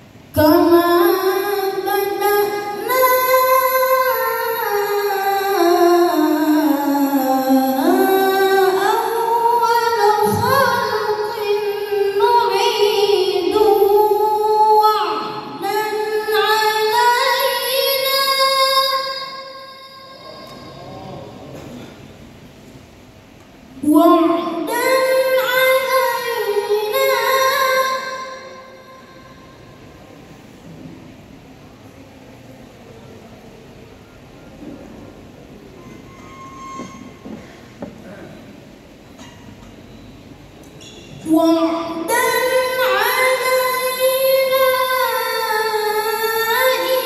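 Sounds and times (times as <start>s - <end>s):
person reciting over loudspeakers: 0.3s - 21.9s, 41.2s - 47.0s.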